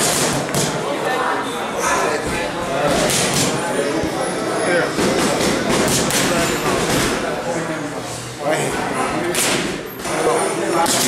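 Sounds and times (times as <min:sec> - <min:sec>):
boxing gloves smacking mitts: 0:00.0 - 0:00.8, 0:02.9 - 0:03.6, 0:05.2 - 0:07.1.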